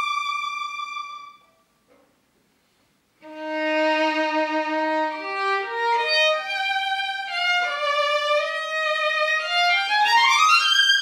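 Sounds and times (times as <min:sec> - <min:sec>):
solo violin bowed: 0:00.0 - 0:01.6, 0:03.2 - 0:11.0.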